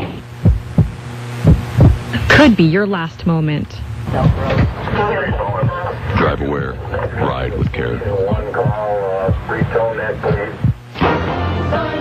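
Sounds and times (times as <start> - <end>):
heartbeat thumps: 0.0 - 2.6, 3.8 - 10.9
steady low hum: 0.0 - 12.0.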